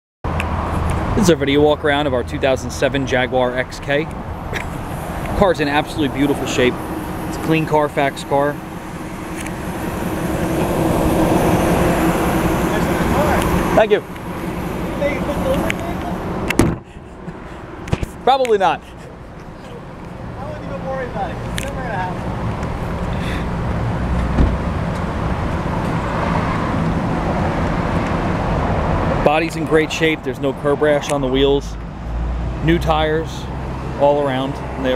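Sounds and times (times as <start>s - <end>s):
vehicle passing: 0.3s - 34.9s
car engine idling: 0.9s - 31.2s
short thump: 16.5s - 16.9s, 24.2s - 24.6s.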